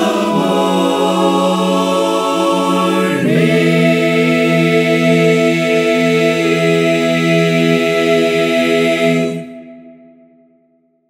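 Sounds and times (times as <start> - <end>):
men's a cappella chorus: 0.0 - 10.0.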